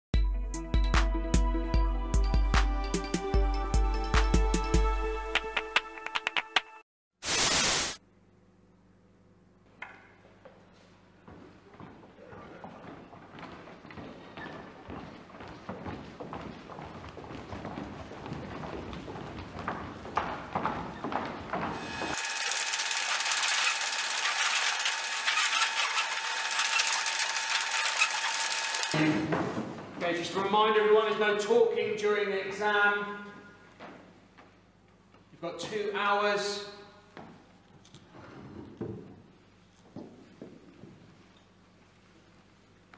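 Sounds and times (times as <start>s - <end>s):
hissing static with whining tones: 7.2s - 8.0s
loud static hiss: 7.2s - 9.2s
feet running on wooden floor: 10.2s - 22.2s, 28.9s - 30.2s, 37.1s - 37.6s, 38.4s - 41.3s.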